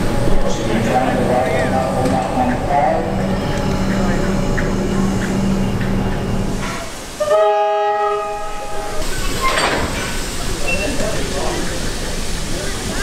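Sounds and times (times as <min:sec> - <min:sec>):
people talking: 0:00.3 - 0:06.0, 0:10.2 - 0:13.0
train whistle blast: 0:06.6 - 0:09.0.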